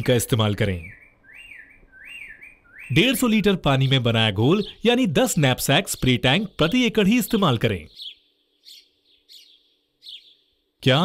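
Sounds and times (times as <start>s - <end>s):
birds chirping faintly: 0.0s - 11.0s.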